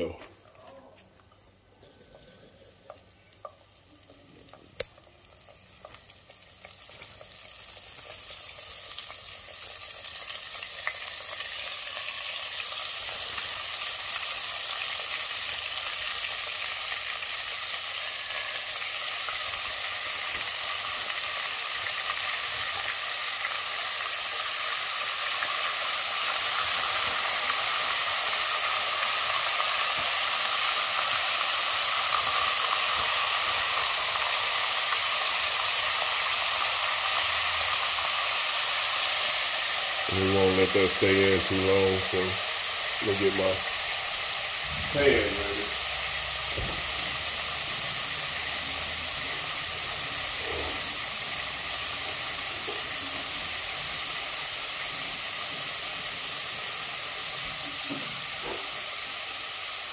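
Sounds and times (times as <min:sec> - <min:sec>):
grease sizzling in a pot: 0:00.0 - 0:59.9.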